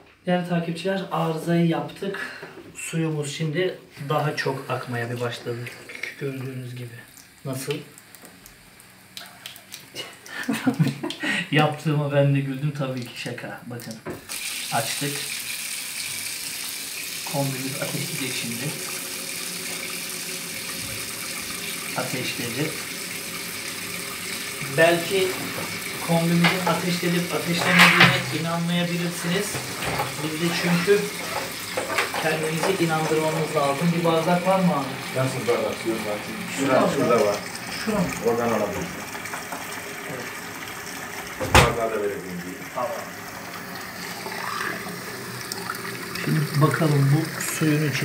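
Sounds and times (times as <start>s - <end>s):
faucet running into sink: 4.1s - 48.0s.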